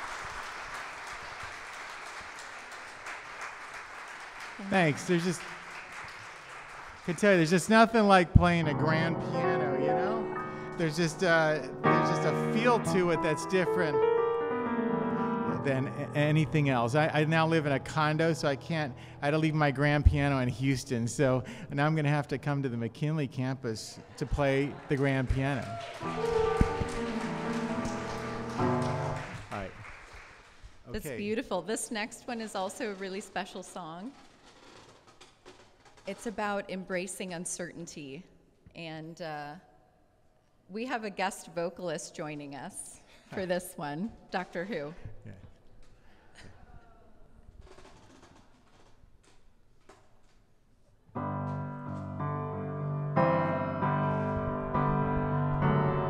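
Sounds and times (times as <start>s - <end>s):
grand piano chords: 7.2s - 20.6s, 25.9s - 29.6s, 51.1s - 56.0s.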